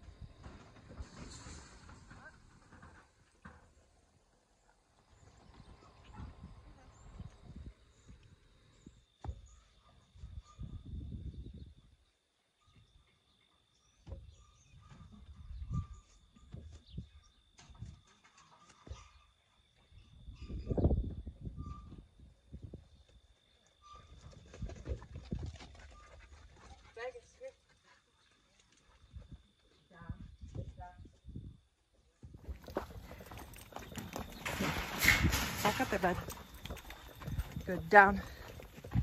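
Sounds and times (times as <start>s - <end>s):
wind rumbling on microphone: 5.2s - 12.0s, 14.1s - 18.1s, 20.0s - 23.2s, 23.9s - 26.4s, 29.0s - 39.0s.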